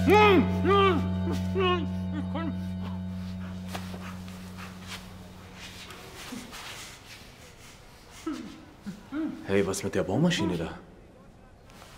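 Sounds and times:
low music drone: 0:00.0 - 0:07.0.

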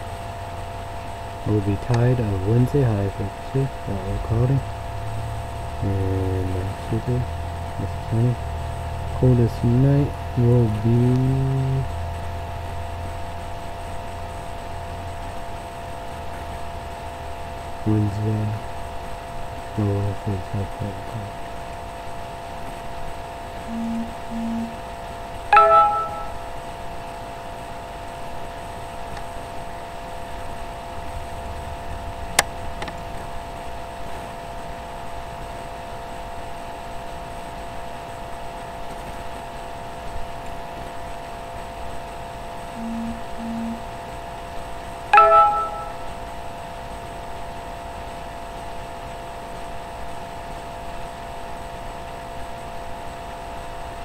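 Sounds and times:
steady hum: 0:00.0 - 0:26.9, 0:41.8 - 0:46.5
short low beeps: 0:23.7 - 0:24.8, 0:25.5 - 0:26.5, 0:42.8 - 0:43.9, 0:45.2 - 0:46.2
chime ringing: 0:25.5 - 0:26.5, 0:45.2 - 0:46.2.

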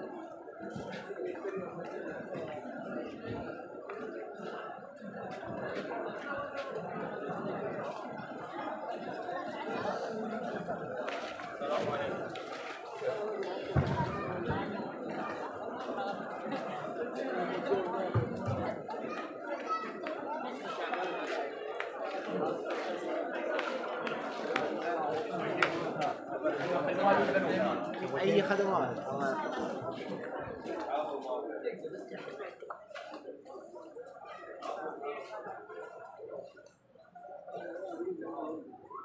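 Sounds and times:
chatter of many people: 0:00.0 - 0:39.0
people talking indistinctly: 0:00.0 - 0:39.0.

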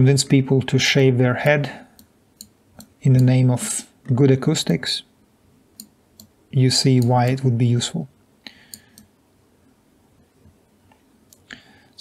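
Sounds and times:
computer mouse clicking: 0:08.7 - 0:09.1.

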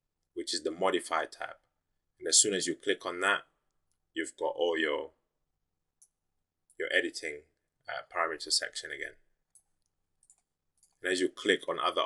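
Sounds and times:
computer mouse clicks: 0:09.5 - 0:11.0.

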